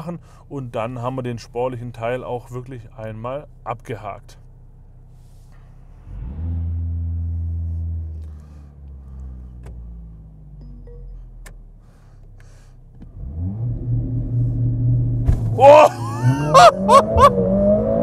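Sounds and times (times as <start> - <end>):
car engine revving: 4.7 - 18.0.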